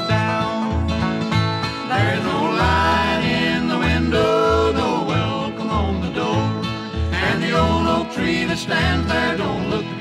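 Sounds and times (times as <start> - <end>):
acoustic guitar: 0.0 - 10.0
banjo playing: 0.0 - 10.0
voices singing in harmony: 1.9 - 10.0.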